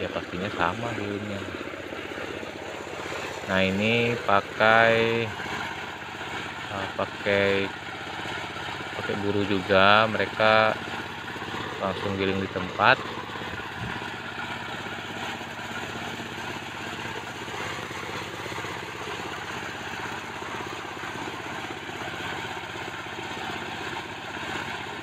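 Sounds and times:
corn sheller running: 0.0 - 25.0
diesel engine running: 0.0 - 25.0.

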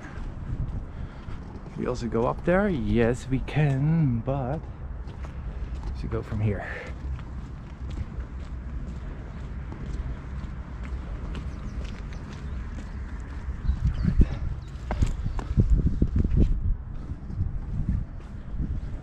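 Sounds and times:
footsteps on wet stone: 0.0 - 19.0
wind rumble on microphone: 0.0 - 19.0.

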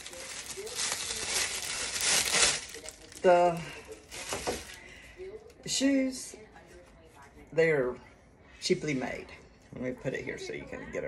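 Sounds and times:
plastic bag crinkling: 0.0 - 5.0.

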